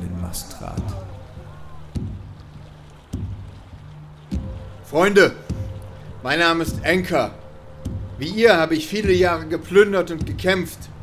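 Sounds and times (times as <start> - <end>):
boat on open water: 0.0 - 11.0
low steady drone: 0.0 - 11.0.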